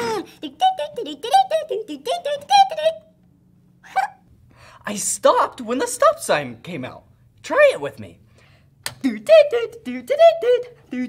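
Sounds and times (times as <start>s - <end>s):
toy electronic voice singing: 0.4s - 3.0s.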